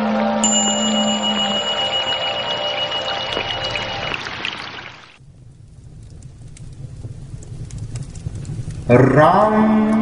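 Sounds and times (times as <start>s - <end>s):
wavering meditation drone: 0.0s - 4.8s.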